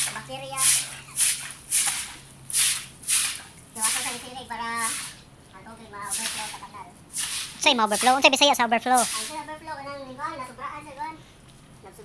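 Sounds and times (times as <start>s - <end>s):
broom swishing on wet concrete: 0.0s - 5.3s, 6.0s - 9.5s.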